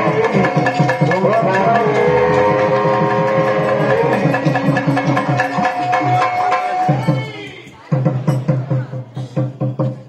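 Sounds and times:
hand drum fast beat: 0.0s - 10.0s.

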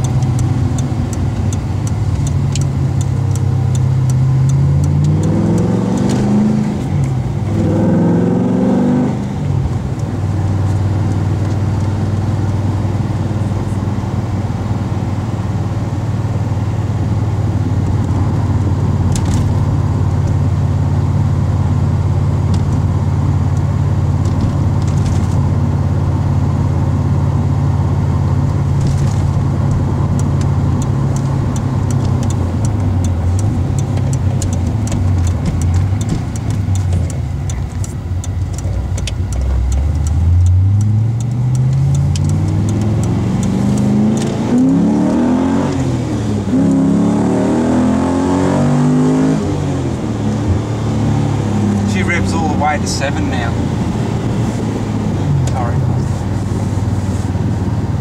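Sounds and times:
car engine revving: 0.0s - 58.0s.

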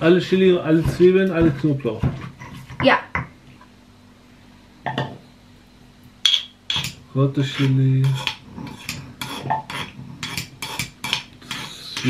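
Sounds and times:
pestle knocking in stone mortar: 6.2s - 7.0s, 7.6s - 11.7s.

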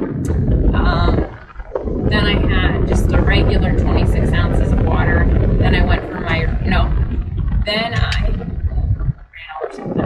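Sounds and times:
road and engine rumble: 0.0s - 10.0s
woman talking: 0.7s - 1.4s, 2.1s - 7.1s, 7.7s - 10.0s.

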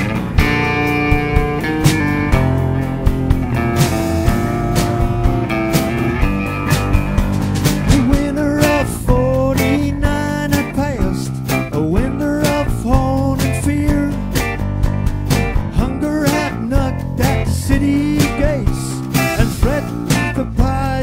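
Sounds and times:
acoustic guitar strumming: 0.0s - 21.0s
bass: 0.0s - 21.0s
drums steady beat: 0.0s - 21.0s
person singing: 7.8s - 14.5s, 15.6s - 21.0s.

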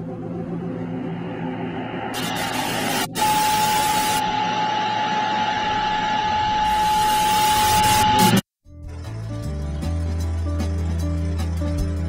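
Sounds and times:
tv static hiss: 2.1s - 4.3s.

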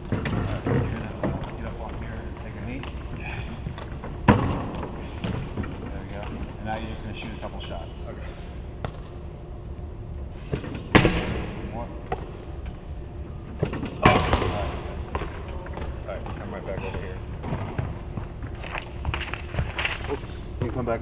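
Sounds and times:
handball thuds echoing in arena: 8.8s - 9.2s, 13.6s - 16.4s.

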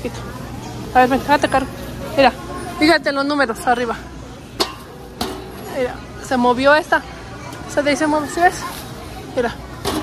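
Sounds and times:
murmur of busy store: 0.0s - 10.0s.

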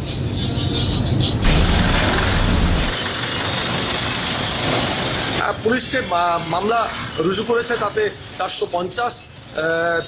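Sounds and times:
vehicle engine rumbling: 1.1s - 5.4s.

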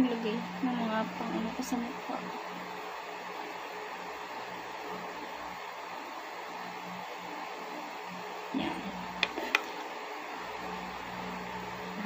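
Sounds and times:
electric fan running: 0.0s - 12.0s.

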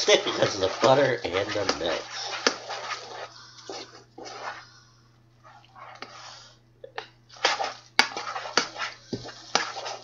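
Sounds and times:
spoon stirring macaroni in saucepan: 0.0s - 10.0s.

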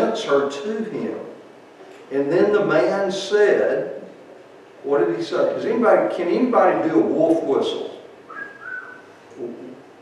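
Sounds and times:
person wolf whistling: 8.3s - 9.1s.

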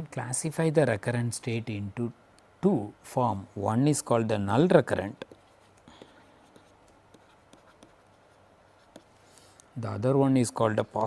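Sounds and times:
man speaking: 0.0s - 5.3s, 9.8s - 11.0s
stylus scratching on tablet: 4.6s - 9.5s.

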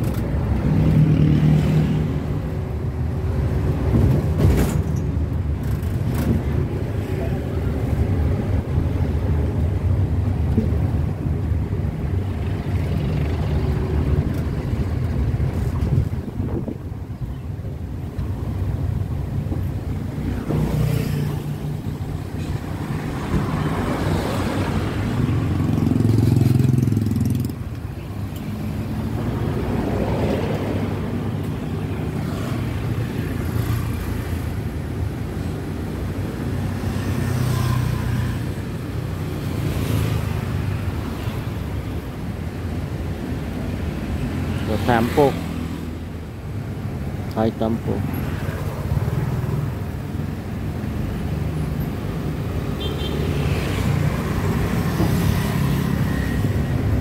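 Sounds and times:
car and motorbike engines: 0.0s - 57.0s
motorbike passing close: 23.0s - 27.7s.

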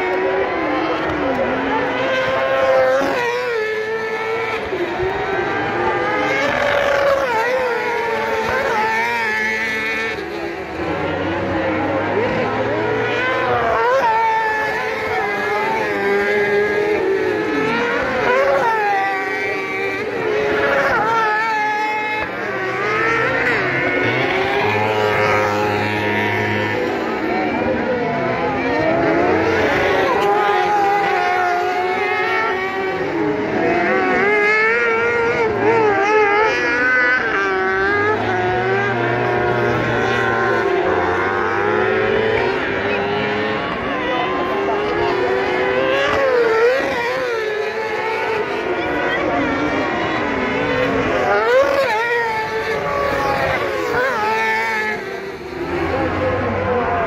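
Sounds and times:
kart engines racing: 0.0s - 57.0s.

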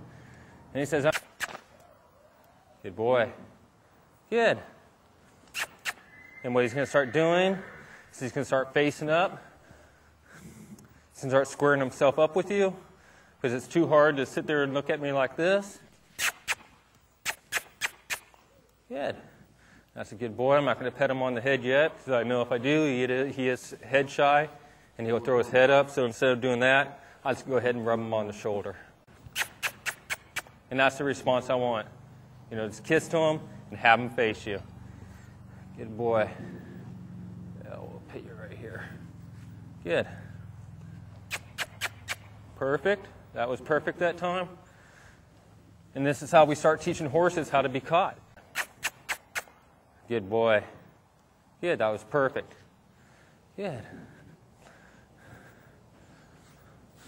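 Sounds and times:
lip kissing smacks: 1.0s - 1.9s, 5.4s - 6.1s, 16.1s - 18.8s, 29.2s - 30.6s, 41.2s - 42.4s, 48.4s - 49.6s.

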